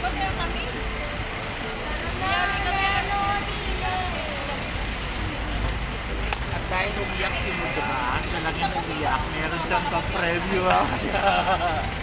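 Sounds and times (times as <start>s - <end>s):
people talking: 0.0s - 12.0s
road traffic rumble: 0.0s - 12.0s.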